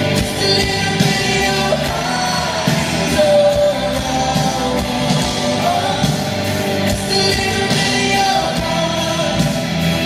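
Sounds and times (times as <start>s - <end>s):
man singing pop song with band: 0.0s - 10.0s.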